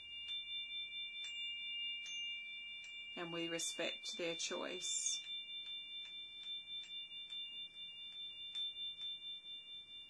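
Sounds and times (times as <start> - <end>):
singing bowl ringing hum: 0.0 - 10.0.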